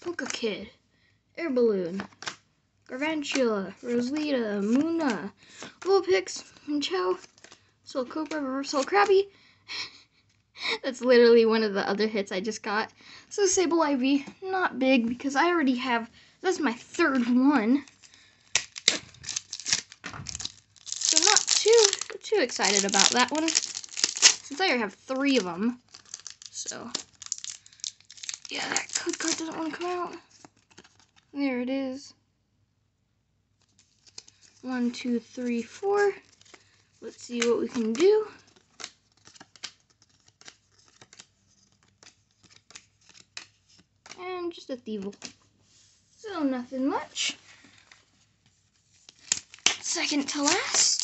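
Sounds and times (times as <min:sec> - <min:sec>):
trading cards rustling and flicking: 0:00.0 - 0:00.5, 0:02.0 - 0:02.4, 0:03.0 - 0:09.3, 0:16.5 - 0:31.3, 0:33.6 - 0:45.8, 0:47.5 - 0:51.0.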